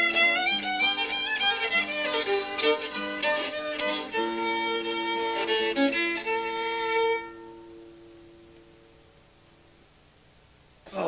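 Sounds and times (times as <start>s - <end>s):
fiddle playing a tune: 0.0s - 8.0s.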